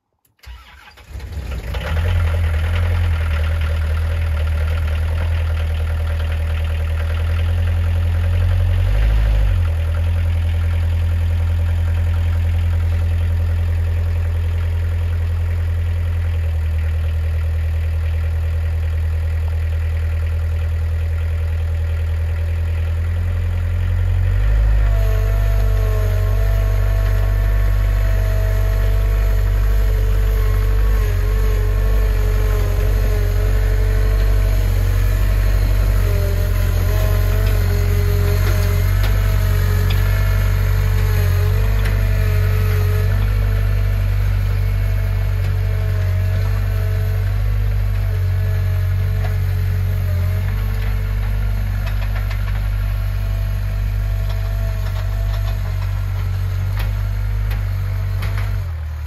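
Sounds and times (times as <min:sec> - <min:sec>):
engine cranking and starting: 0:00.2 - 0:05.8, 0:24.3 - 0:47.4, 0:50.4 - 0:59.0
engine running: 0:00.4 - 0:59.0.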